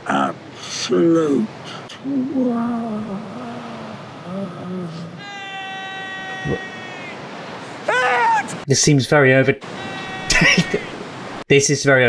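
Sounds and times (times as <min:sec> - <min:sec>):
man's wavering drawn-out voice: 0:04.9 - 0:07.0, 0:09.6 - 0:11.0.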